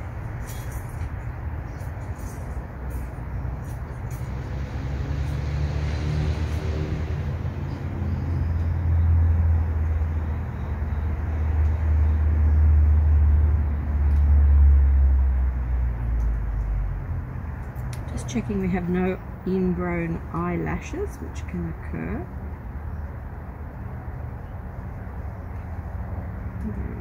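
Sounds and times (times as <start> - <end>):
vehicle engine rumble: 0.0 - 27.0.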